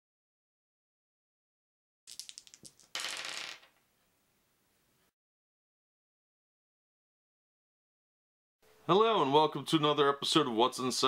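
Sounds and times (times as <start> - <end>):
plastic dice rolling on wooden table: 2.1 - 3.8.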